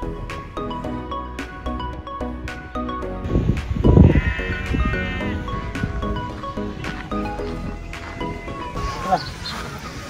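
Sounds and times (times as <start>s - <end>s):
background music: 0.0s - 10.0s
sheep bleating: 3.9s - 6.4s.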